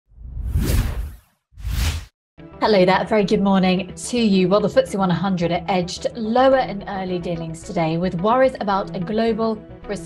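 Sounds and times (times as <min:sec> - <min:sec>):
whoosh sound effects: 0:00.2 - 0:02.1.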